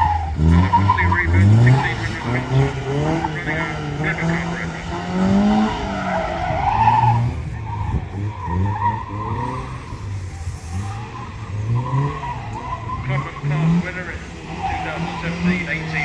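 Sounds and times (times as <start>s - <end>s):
car engine revving: 0.0s - 16.0s
tyres squealing on tarmac: 0.0s - 16.0s.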